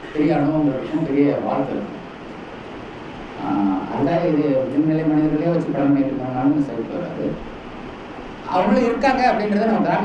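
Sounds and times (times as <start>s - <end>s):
man speaking: 0.0s - 2.0s, 3.4s - 7.4s, 8.5s - 10.0s
room hiss through microphone: 0.0s - 10.0s.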